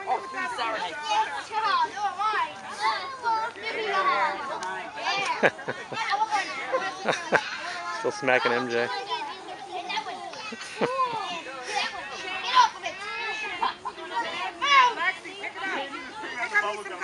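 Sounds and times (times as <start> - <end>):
young children chattering and calling out: 0.0 - 17.0.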